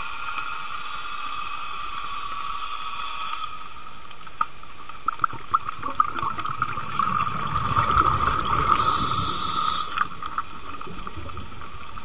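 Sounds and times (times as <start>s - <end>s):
underwater hiss of water: 0.0s - 4.0s, 5.8s - 12.0s.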